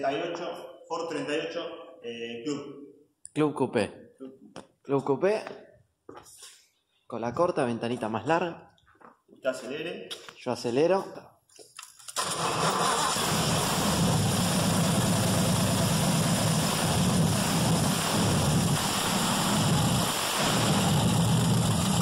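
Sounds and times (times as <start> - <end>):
car engine revving: 12.2 - 22.0.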